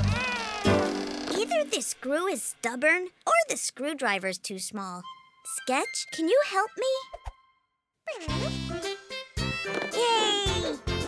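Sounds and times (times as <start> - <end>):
meow-like vocal cry: 0.0 - 1.0
cartoon background music: 5.0 - 11.0.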